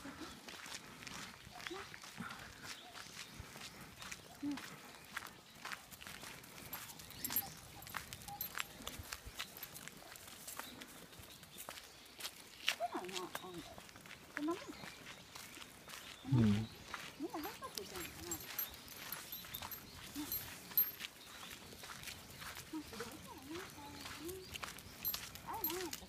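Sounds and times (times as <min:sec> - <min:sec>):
footsteps on paved path: 0:00.0 - 0:26.0
short low vocal sounds: 0:16.3 - 0:16.7.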